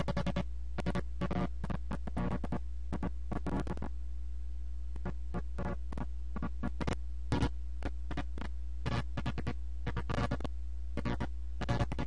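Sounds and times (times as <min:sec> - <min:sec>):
crackling bursts: 0:00.0 - 0:04.0, 0:04.9 - 0:12.0
low electronic hum: 0:00.0 - 0:12.0.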